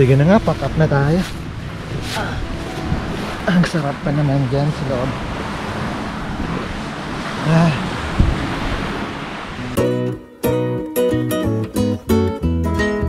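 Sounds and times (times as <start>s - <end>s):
acoustic guitar music: 0.0s - 7.2s, 8.1s - 13.0s
waves on shore: 0.0s - 10.0s
wind: 0.0s - 13.0s.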